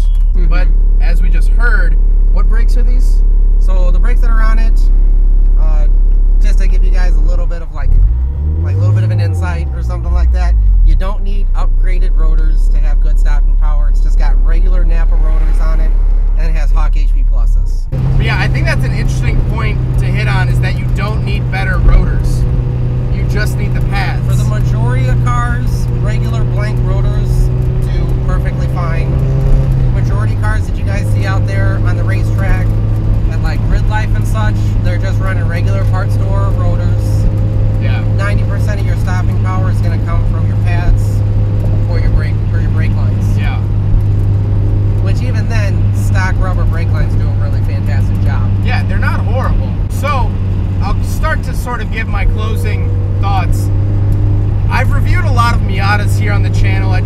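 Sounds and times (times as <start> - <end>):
car engine drone: 0.0 - 57.0
road noise: 0.0 - 57.0.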